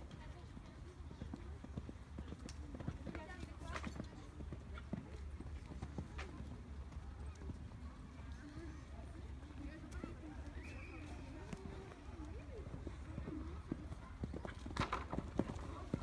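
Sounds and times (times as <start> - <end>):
people talking: 6.0 - 16.0.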